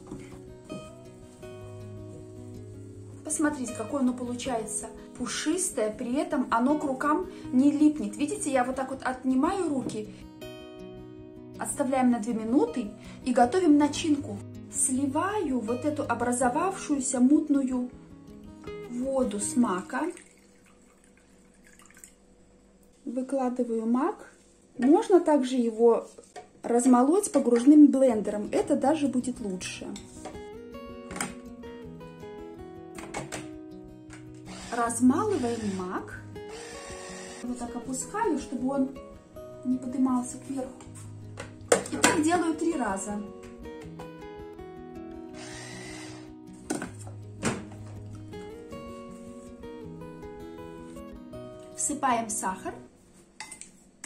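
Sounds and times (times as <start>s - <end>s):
background music: 0.0s - 20.7s, 26.7s - 52.9s
water trickling and dripping: 19.8s - 22.3s
blender grinding seeds: 34.4s - 37.5s, 45.3s - 46.3s.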